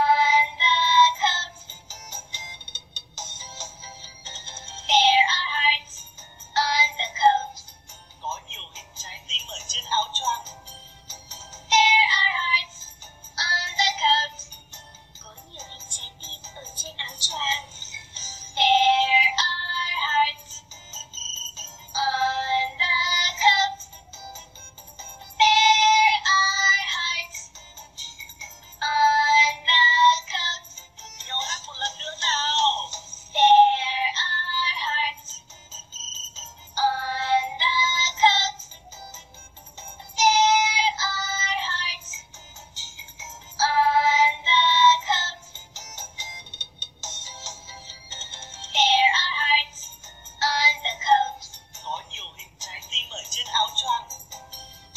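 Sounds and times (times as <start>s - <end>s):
children's song with backing music: 0.0s - 54.9s.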